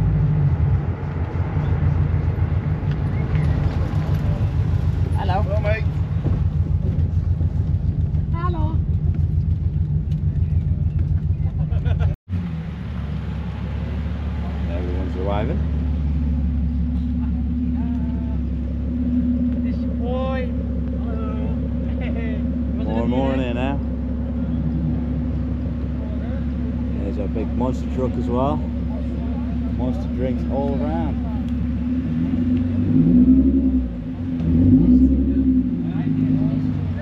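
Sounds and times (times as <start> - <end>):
car road and engine noise: 0.0 - 37.0
steady low drone: 12.8 - 37.0
voices talking: 14.1 - 32.6, 34.0 - 37.0.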